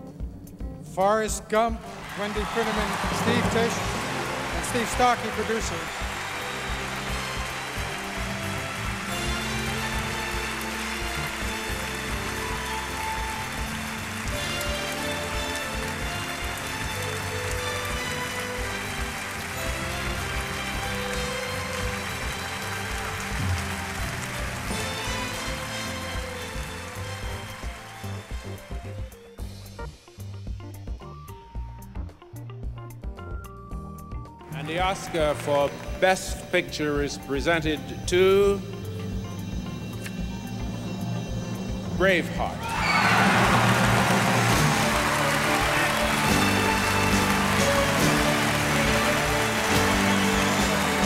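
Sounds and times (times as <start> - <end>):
music with long held notes: 1.9 - 51.0.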